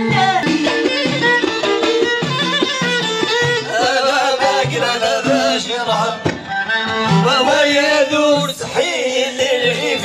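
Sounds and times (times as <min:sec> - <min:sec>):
folk melody line: 0:00.0 - 0:10.0
frame drums: 0:00.0 - 0:10.0.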